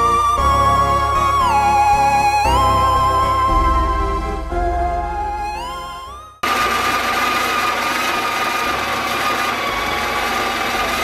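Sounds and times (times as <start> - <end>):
espresso running into cups: 6.4 - 11.0.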